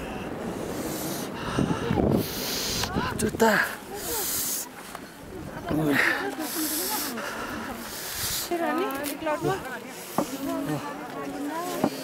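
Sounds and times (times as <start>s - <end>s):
hissing noise bursts: 0.0s - 3.1s
crowd talking: 0.0s - 12.0s.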